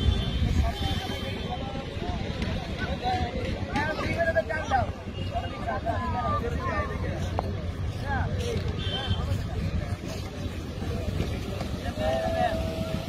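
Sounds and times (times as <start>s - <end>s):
men talking and calling out: 0.4s - 13.0s.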